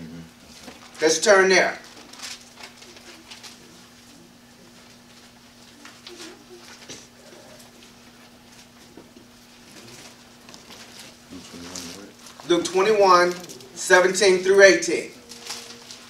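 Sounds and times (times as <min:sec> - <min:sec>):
low electrical hum: 0:00.0 - 0:16.0
book pages turning: 0:09.6 - 0:13.8, 0:15.2 - 0:16.0.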